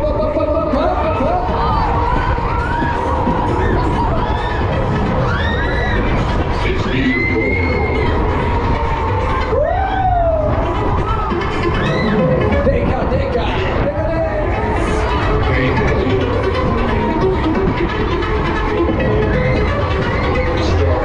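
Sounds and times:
loud fairground music: 0.0s - 21.0s
riders shouting and screaming: 0.9s - 12.4s.

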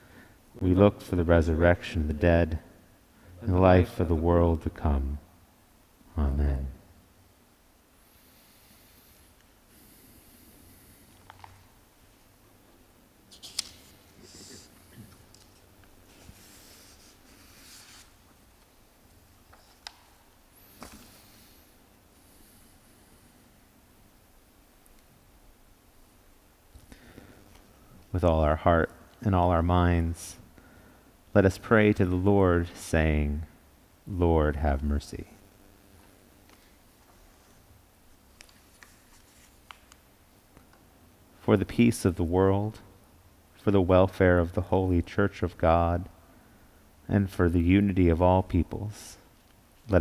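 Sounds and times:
paper rustling: 13.3s - 18.3s, 20.7s - 21.2s, 38.3s - 40.0s.

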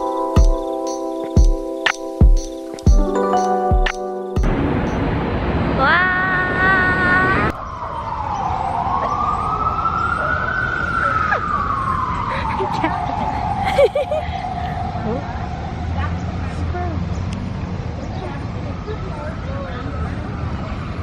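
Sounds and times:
city traffic rumble: 0.0s - 21.0s
siren wailing: 5.8s - 16.0s.

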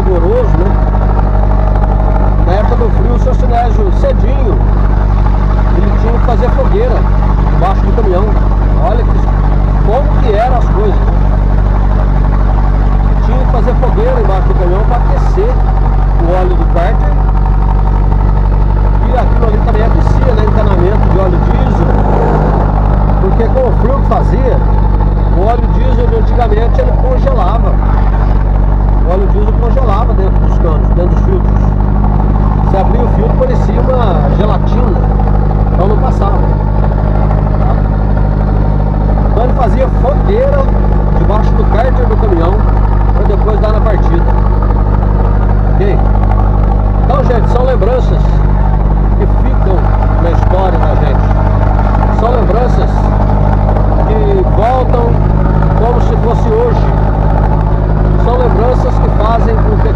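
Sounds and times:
indistinct voices: 0.0s - 17.5s, 18.9s - 59.9s
vehicle engine drone and road noise: 0.0s - 59.9s.

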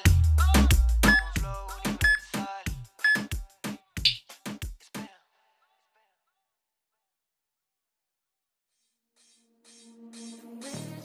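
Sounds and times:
background music with drum hits: 0.0s - 5.1s
short high beeps: 1.0s - 1.4s, 2.0s - 2.2s, 3.1s - 3.3s.

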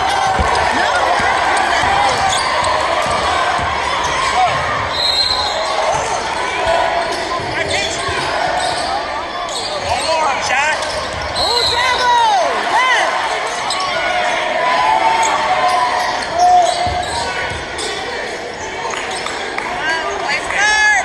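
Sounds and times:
sneakers squeaking: 0.0s - 14.3s, 15.0s - 20.5s
crowd chatter: 0.0s - 21.0s.

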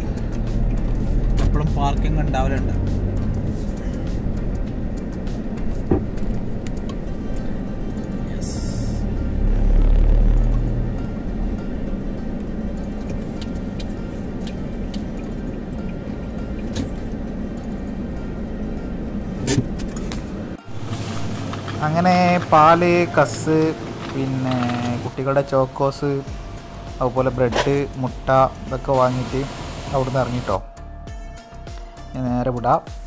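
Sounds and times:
road and engine noise in car: 0.0s - 33.0s.

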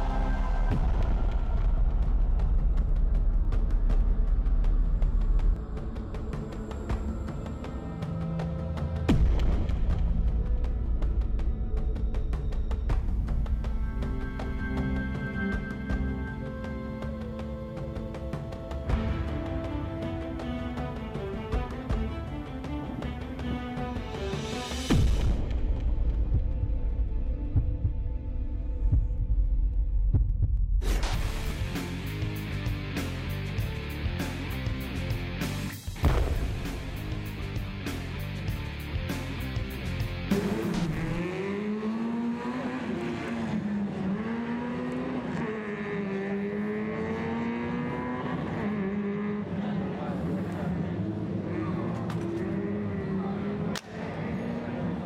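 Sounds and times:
rally car engine accelerating hard: 40.4s - 55.0s.

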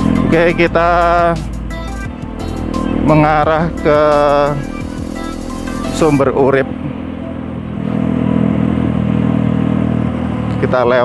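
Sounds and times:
motorcycle engine running: 0.0s - 11.0s
road and wind noise: 0.0s - 11.0s.

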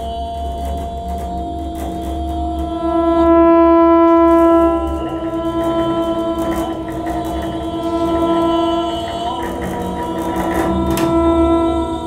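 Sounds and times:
low drone: 0.0s - 12.0s
long held note rich in overtones: 1.8s - 12.0s.

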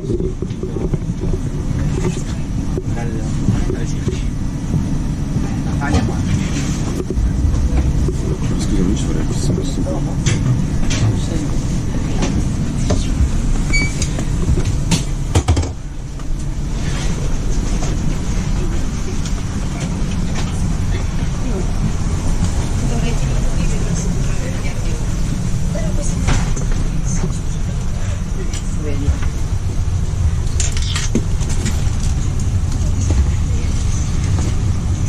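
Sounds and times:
train coach rumbling: 0.0s - 35.0s.

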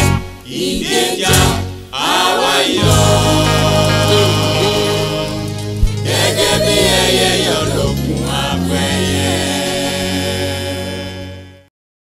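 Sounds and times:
gospel singing: 0.0s - 11.7s.

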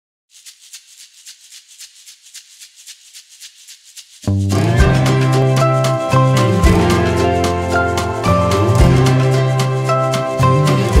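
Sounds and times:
shaker rhythm: 0.3s - 11.0s.

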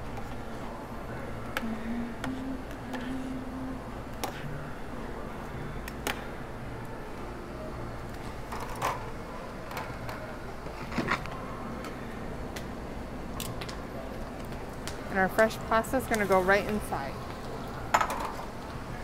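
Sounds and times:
low kitchen hum: 0.0s - 19.0s.

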